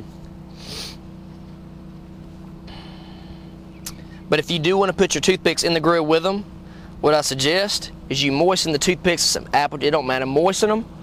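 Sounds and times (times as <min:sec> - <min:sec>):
low hum: 0:00.0 - 0:10.1
short sniff: 0:00.5 - 0:01.0.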